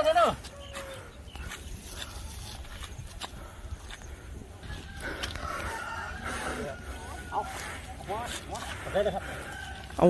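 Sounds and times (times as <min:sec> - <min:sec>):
rooster crowing: 0:04.6 - 0:07.9, 0:09.2 - 0:10.0.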